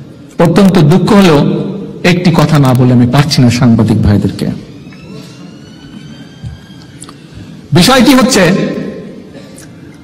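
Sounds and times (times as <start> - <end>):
room noise: 0.0 - 10.0
man speaking: 0.4 - 4.7, 7.7 - 9.2.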